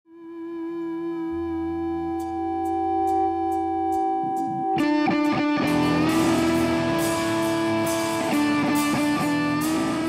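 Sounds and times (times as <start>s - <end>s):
sustained musical tone: 0.2s - 10.0s.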